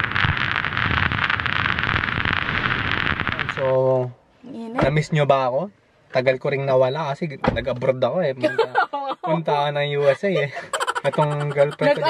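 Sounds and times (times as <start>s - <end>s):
static hiss with crackle: 0.0s - 4.2s.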